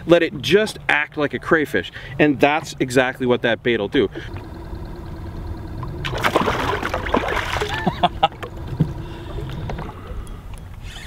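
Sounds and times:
steady low rumble: 0:00.0 - 0:11.0
water splashing: 0:04.0 - 0:10.3.

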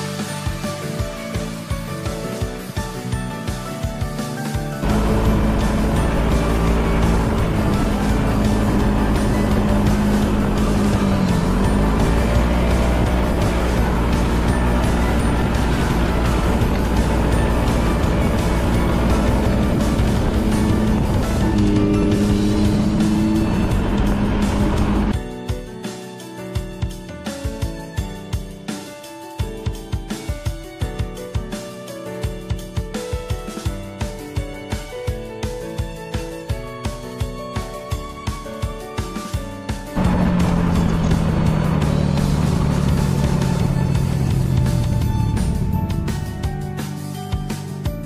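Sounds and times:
music playing: 0:00.0 - 0:48.0
scooter engine running: 0:04.8 - 0:25.2, 0:40.0 - 0:46.8
wind and road noise: 0:04.8 - 0:25.2, 0:40.0 - 0:46.6.

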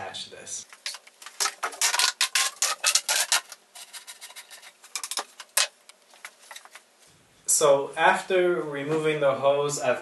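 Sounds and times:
plastic hose crackling clicks: 0:00.7 - 0:06.8.

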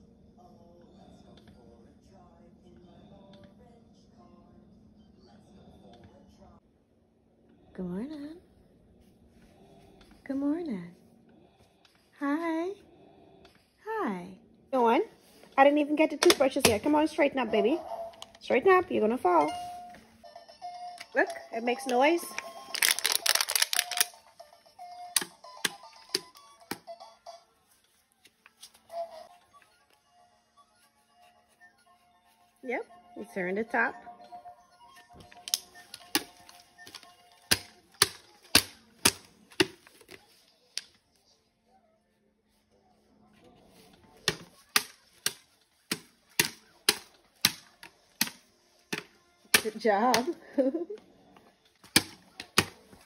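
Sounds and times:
faint music-like tones: 0:00.0 - 0:53.0
plastic bottle crackling: 0:22.4 - 0:24.2, 0:35.2 - 0:40.2
plastic bottle crinkling: 0:22.4 - 0:24.2.

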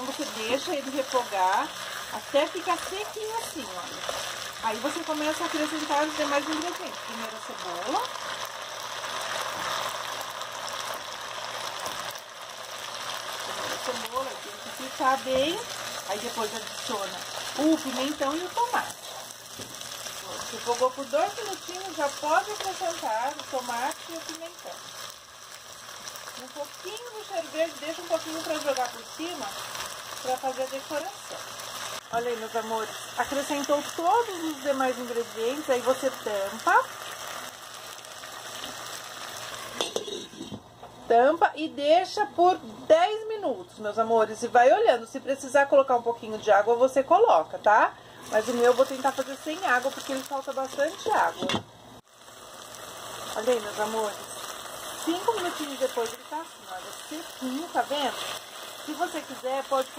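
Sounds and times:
chicken and onion sizzling in pan: 0:00.0 - 0:59.9
spatula scraping pan: 0:39.7 - 0:40.6.

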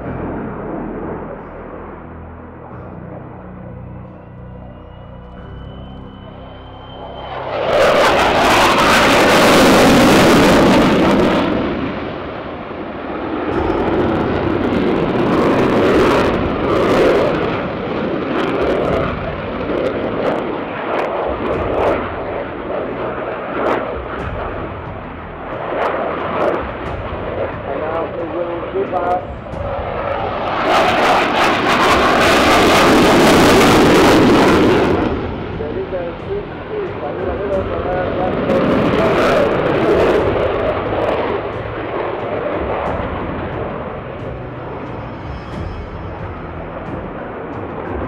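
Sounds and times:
jet engine roaring: 0:00.0 - 0:48.0.

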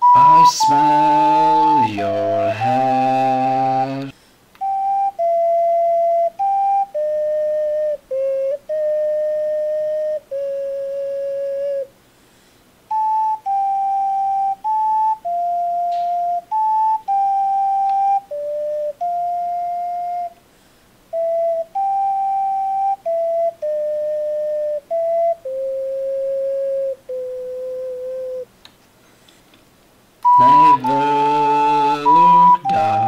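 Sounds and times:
ocarina melody: 0:00.0 - 0:11.9, 0:12.9 - 0:20.4, 0:21.1 - 0:28.5, 0:30.2 - 0:33.0.

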